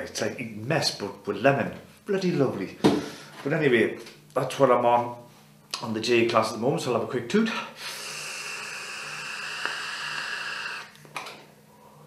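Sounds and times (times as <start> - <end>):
person exhaling: 7.7 - 11.0
air hissing through vape tank: 7.8 - 11.0.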